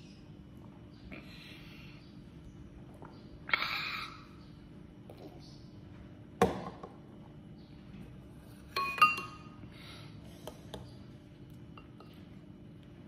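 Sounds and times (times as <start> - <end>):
utensil clinking ceramic bowl: 8.7 - 9.5.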